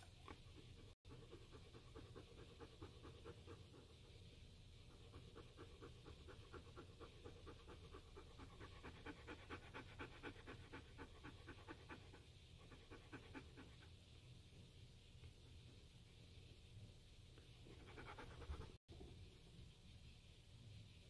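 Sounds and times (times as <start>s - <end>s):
dog panting: 0.3s - 13.9s, 17.7s - 18.8s.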